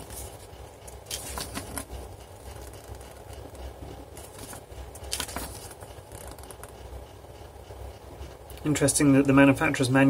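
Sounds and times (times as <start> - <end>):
paper rustling: 0.0 - 1.9, 4.1 - 6.8
low steady hum: 0.0 - 10.0.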